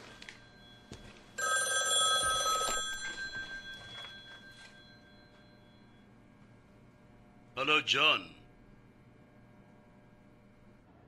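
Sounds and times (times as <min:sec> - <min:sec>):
telephone bell ringing: 0:00.0 - 0:06.0.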